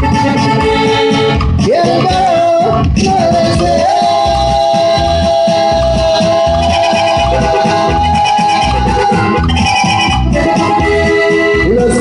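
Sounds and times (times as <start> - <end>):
live band playing: 0.0 - 12.0
held melody note sliding up: 6.1 - 11.6.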